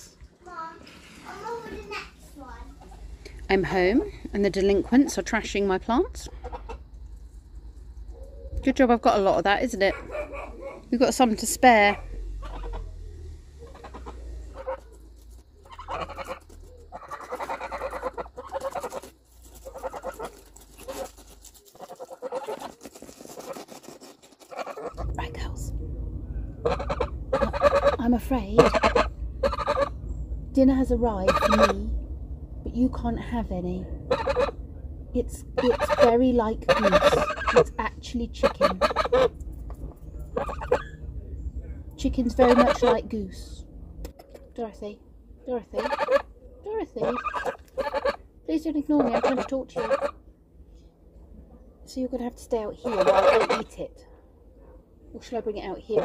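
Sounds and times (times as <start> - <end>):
soft low goose calls: 6.2 - 6.9, 10.0 - 23.7, 24.4 - 25.2, 26.5 - 30.0, 31.2 - 31.9, 34.1 - 34.6, 35.5 - 41.1, 42.3 - 43.0, 45.7 - 48.3, 49.0 - 50.3, 52.7 - 53.9
beaks clicking and crunching leaves: 10.7 - 25.5, 35.5 - 37.8, 38.4 - 40.9, 47.0 - 48.2.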